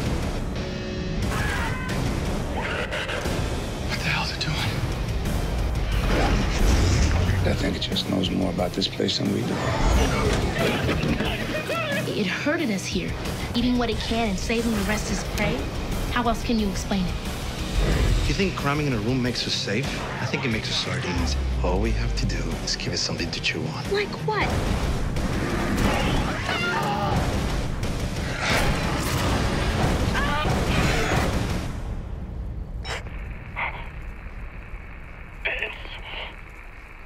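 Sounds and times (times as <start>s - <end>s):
dramatic score: 0.0s - 36.9s
low rumbling trailer score: 27.2s - 37.0s.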